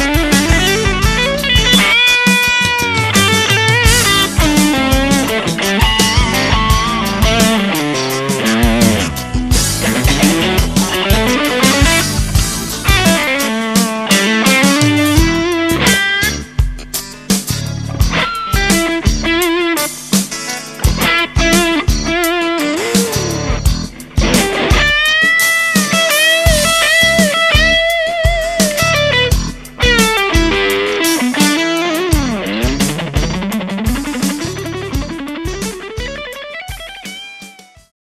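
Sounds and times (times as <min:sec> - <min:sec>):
electric guitar lead: 0:00.0 - 0:37.9.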